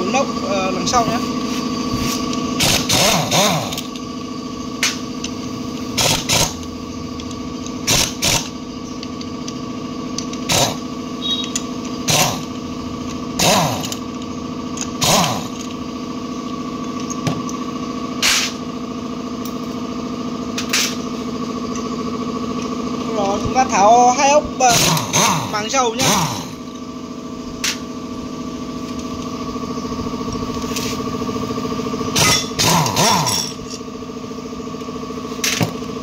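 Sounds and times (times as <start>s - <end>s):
steady motor hum: 0.0s - 36.0s
impact wrench bursts: 1.3s - 18.7s, 24.6s - 27.9s, 32.0s - 33.9s.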